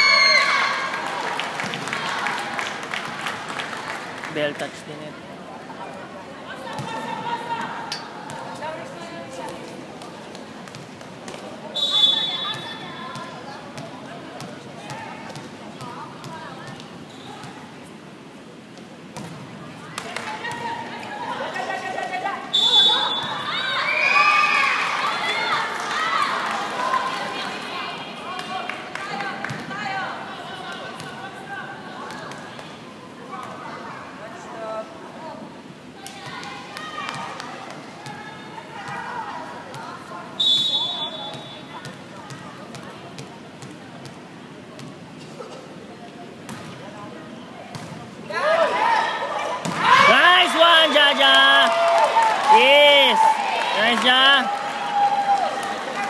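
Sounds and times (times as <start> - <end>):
referee whistle blasts: 11.8 - 12.6, 22.5 - 23.5, 40.4 - 41.7
spectators shouting: 48.3 - 56.0.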